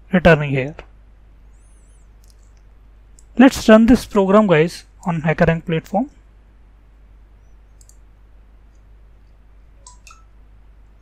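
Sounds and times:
electrical hum: 0:00.0 - 0:11.0
computer mouse clicks: 0:01.6 - 0:03.3, 0:07.7 - 0:08.0, 0:09.8 - 0:10.3.

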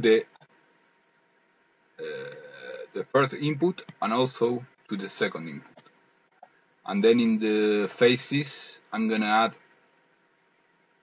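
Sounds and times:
man saying uhh: 0:02.0 - 0:03.0.

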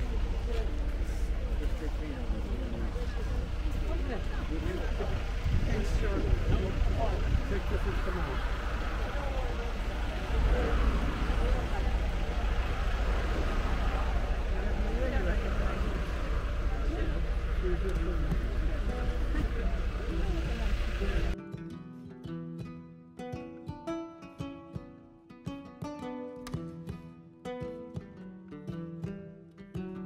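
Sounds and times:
coach engine and road noise: 0:00.0 - 0:21.4
faint voices: 0:00.0 - 0:21.4
plucked-string background music: 0:16.0 - 0:30.0.

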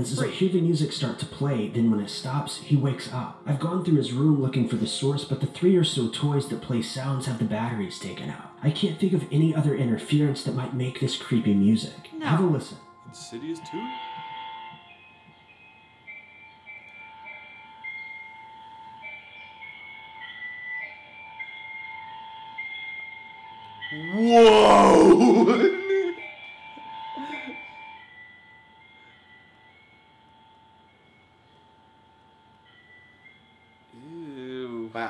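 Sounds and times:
atonal melody through speaker: 0:00.0 - 0:35.0
person shouting whoa: 0:24.0 - 0:26.2.

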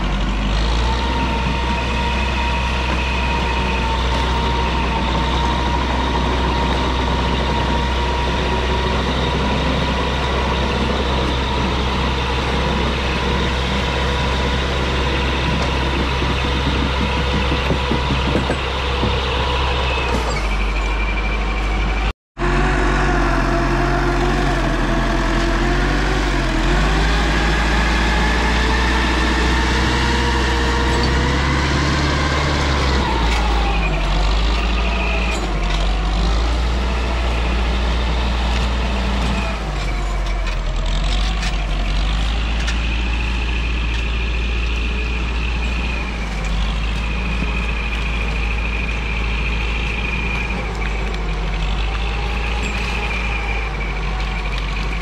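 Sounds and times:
diesel engine under load: 0:00.0 - 0:55.0.

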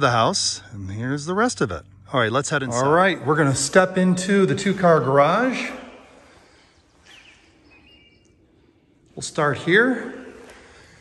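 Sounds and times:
faint bird calls: 0:05.6 - 0:09.0.

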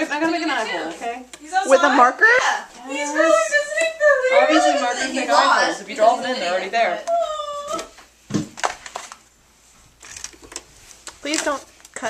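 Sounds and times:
high whining voice: 0:07.1 - 0:08.0.

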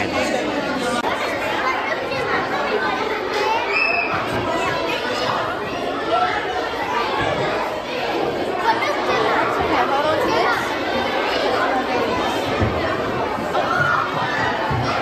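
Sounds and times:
children chattering: 0:00.0 - 0:15.0.

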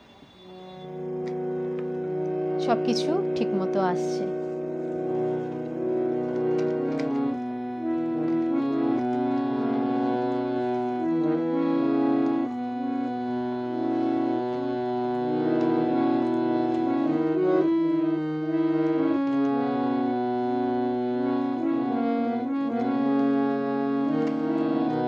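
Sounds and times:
harmonium playing: 0:00.0 - 0:25.0.

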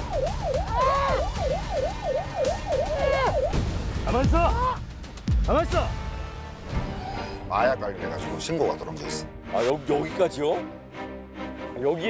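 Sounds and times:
police siren yelping: 0:00.0 - 0:03.6.

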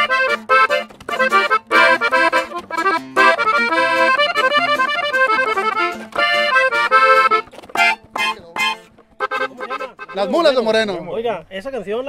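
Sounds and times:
button accordion playing: 0:00.0 - 0:10.9.

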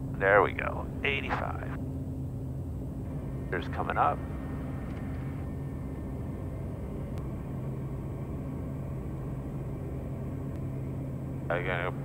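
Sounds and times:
turboprop engine droning: 0:00.0 - 0:12.0.

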